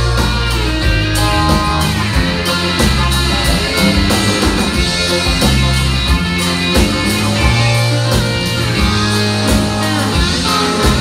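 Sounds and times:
drums: 0.0s - 11.0s
electric guitar: 0.0s - 11.0s.

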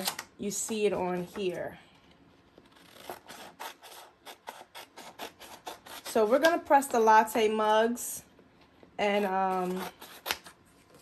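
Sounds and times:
scissors snipping paper: 2.7s - 6.6s, 9.0s - 10.6s.

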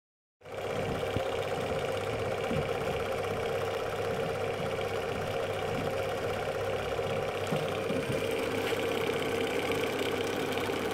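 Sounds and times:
film projector clatter: 0.4s - 10.9s.

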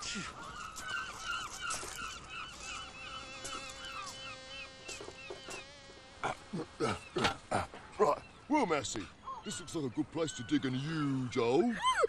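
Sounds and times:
seagull calling: 0.0s - 5.6s, 6.3s - 12.0s.

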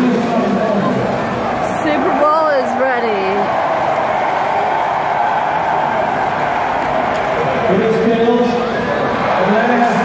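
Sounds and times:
large crowd talking: 0.0s - 10.0s.

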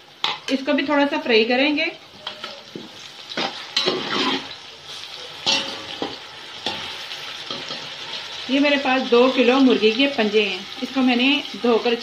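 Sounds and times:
onions sizzling in fat: 0.0s - 12.0s
metal spatula scraping a pot: 3.4s - 8.0s.

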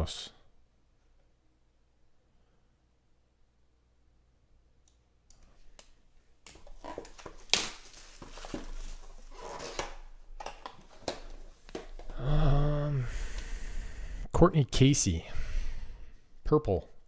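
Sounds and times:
plastic wrap crinkling and tearing: 6.5s - 11.4s.

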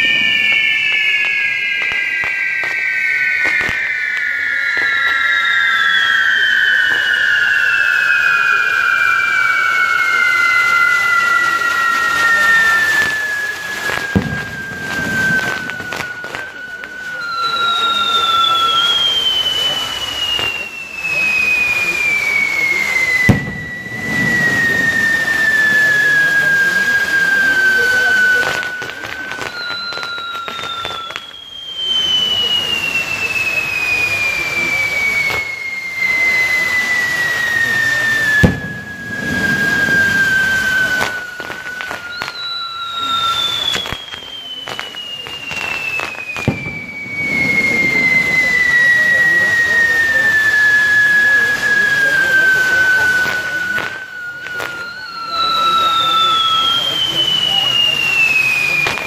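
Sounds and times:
firework bangs: 0.0s - 59.0s
spinning fireworks hissing: 0.0s - 59.0s
whistling fireworks: 0.0s - 59.0s.

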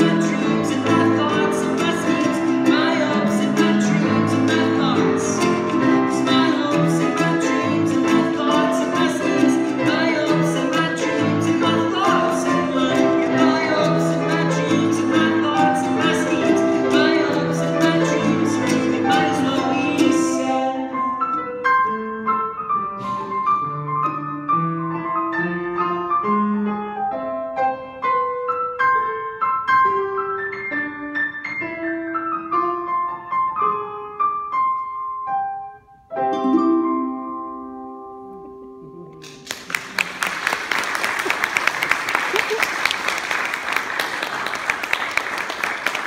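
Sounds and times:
man singing: 0.0s - 21.2s
grand piano playing: 0.0s - 46.0s.

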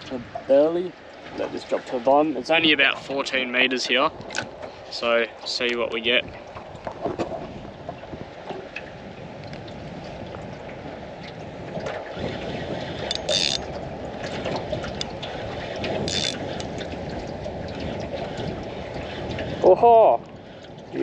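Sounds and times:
water lapping against hull: 0.0s - 21.0s
wind on microphone: 0.0s - 21.0s.

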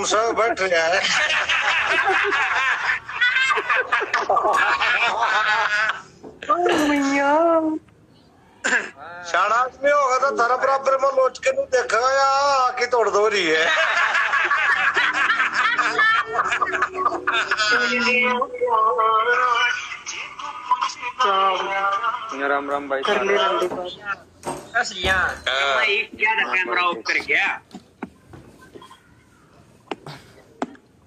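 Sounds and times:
people laughing hard: 0.8s - 6.2s, 13.4s - 18.4s.

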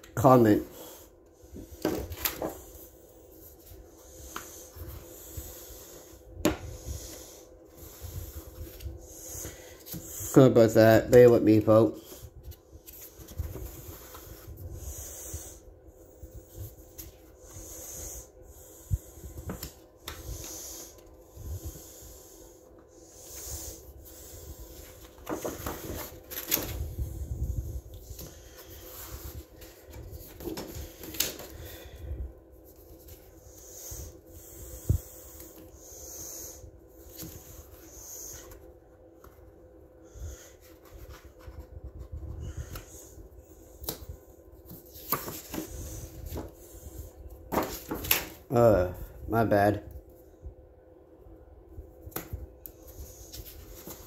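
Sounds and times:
faint steady hum: 0.0s - 54.0s
paper pages rustling: 24.9s - 26.8s, 47.5s - 48.4s, 53.2s - 54.0s.

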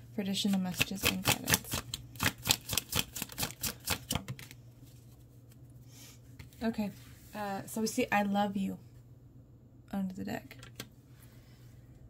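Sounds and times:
cards being shuffled: 0.5s - 5.6s.

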